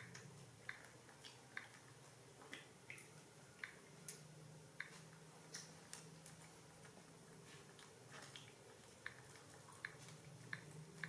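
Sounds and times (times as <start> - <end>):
monkeys chewing wet smacks: 4.8 - 11.0.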